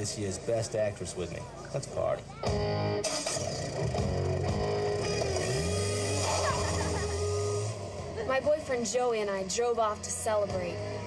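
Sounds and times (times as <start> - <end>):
car engine revving: 2.9 - 11.0.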